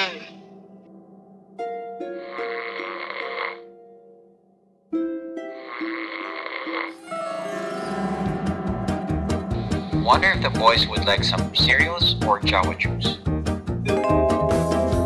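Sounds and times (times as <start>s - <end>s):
light plucked music: 0.0s - 3.0s, 3.7s - 15.0s
cartoon snoring: 2.1s - 3.8s, 5.5s - 8.2s.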